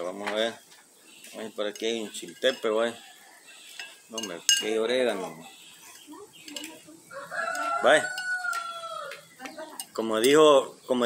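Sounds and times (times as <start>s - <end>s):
rooster crowing: 7.0s - 9.4s.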